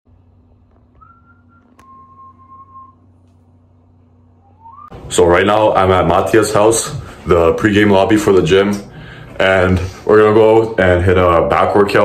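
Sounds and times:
steady low hum: 0.1s - 12.0s
faint whistling: 0.9s - 3.1s, 4.3s - 5.0s.

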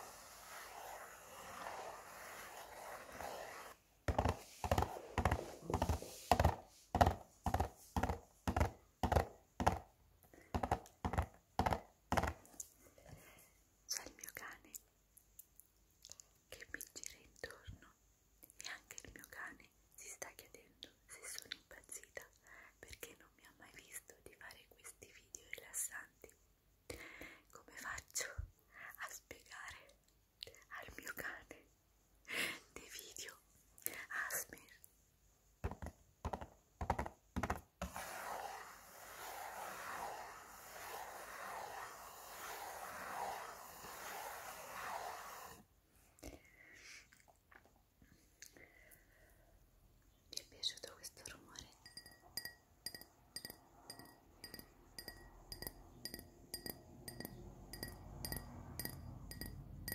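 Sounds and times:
woman whispering: 13.9s - 14.9s, 16.5s - 26.4s, 27.4s - 31.7s, 32.7s - 34.9s, 50.3s - 51.8s.

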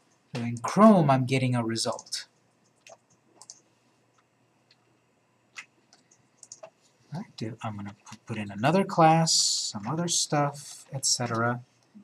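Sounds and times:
computer mouse clicks: 1.9s - 4.9s, 5.5s - 6.8s.

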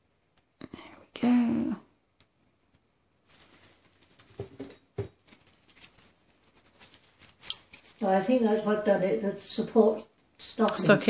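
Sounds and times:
soft rustling hiss: 0.0s - 11.0s
person whispering: 0.6s - 1.8s, 10.6s - 11.0s.

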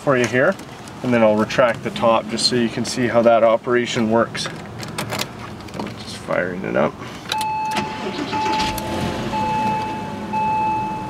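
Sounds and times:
car engine starting and idling: 0.0s - 11.0s
electronic warning tone: 7.4s - 11.0s.

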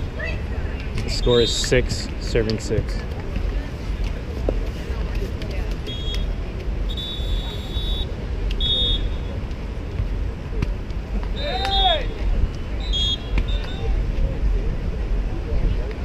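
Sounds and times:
faint crowd hubbub: 0.0s - 16.0s.

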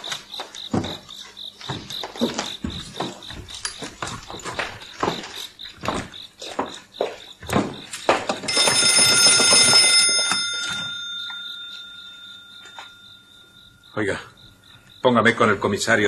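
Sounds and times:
crickets chirping: 0.0s - 16.0s
old telephone bell ringing: 8.4s - 14.6s.

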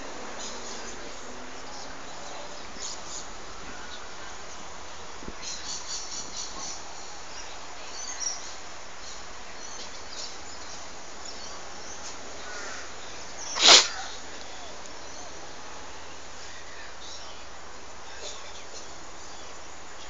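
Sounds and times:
steady background noise: 0.0s - 20.0s
short high bird calls: 12.4s - 15.3s
loud sharp burst: 13.6s - 14.0s.

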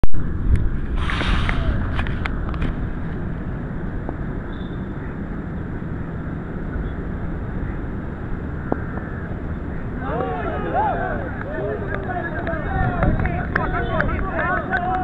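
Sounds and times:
wind buffeting microphone: 0.1s - 15.0s.

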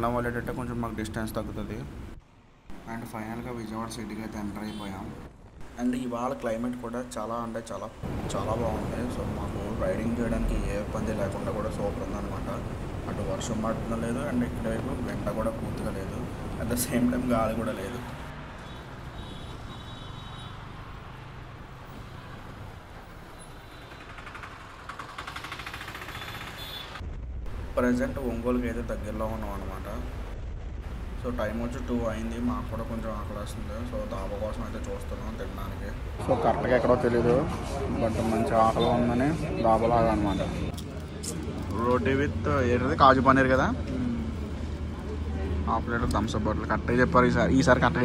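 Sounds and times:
slow city traffic: 0.0s - 48.0s
man talking: 2.8s - 18.2s, 27.7s - 30.1s, 31.2s - 40.8s
engine rapid clatter: 23.4s - 27.0s.

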